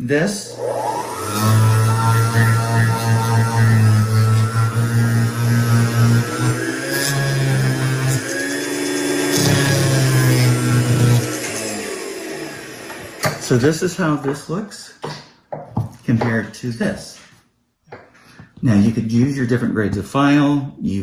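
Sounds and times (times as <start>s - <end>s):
rotary tool droning hum: 0.4s - 13.6s.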